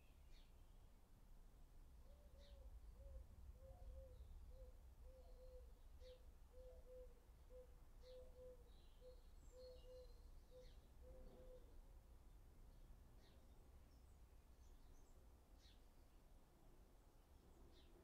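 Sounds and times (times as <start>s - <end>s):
bird chirps: 3.7s - 11.7s.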